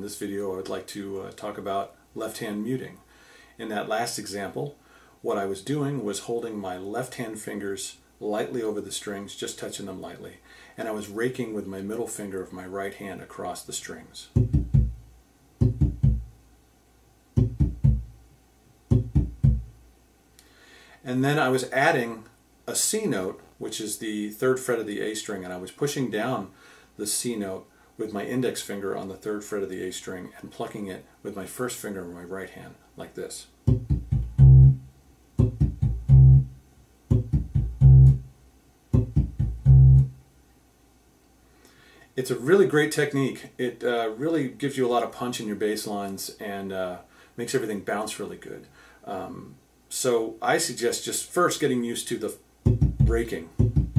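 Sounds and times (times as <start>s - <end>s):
electric bass raked strings: 14.4s - 15.0s, 15.6s - 16.3s, 17.4s - 18.1s, 18.9s - 19.7s, 33.7s - 34.8s, 35.4s - 36.5s, 37.1s - 38.3s, 38.9s - 40.1s, 52.7s - 53.9s.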